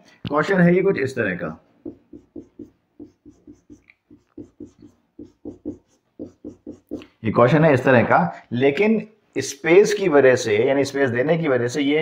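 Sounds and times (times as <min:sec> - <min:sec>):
marker pen strokes on whiteboard: 0:01.7 - 0:07.3.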